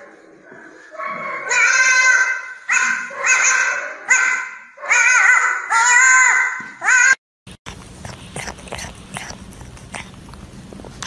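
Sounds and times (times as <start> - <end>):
small dog yelping howls: 1.4 - 7.2.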